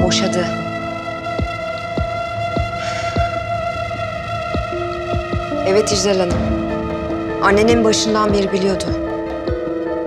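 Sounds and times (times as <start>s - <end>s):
synthesizer drone: 0.0s - 10.0s
low heartbeat-like thuds: 1.3s - 3.6s, 4.4s - 9.7s.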